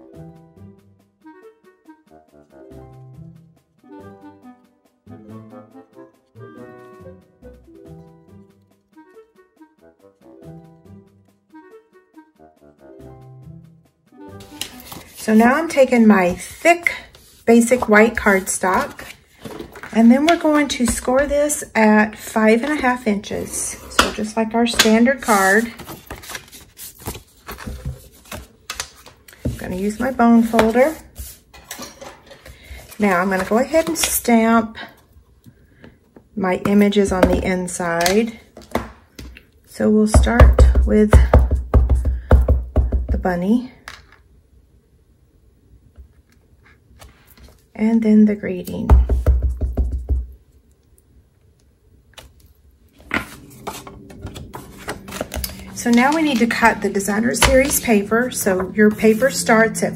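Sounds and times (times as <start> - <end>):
paper scraping: 14.4 - 20.0, 24.7 - 31.5, 53.0 - 59.3
cardstock rustling and clicking: 24.7 - 29.5, 53.0 - 58.0.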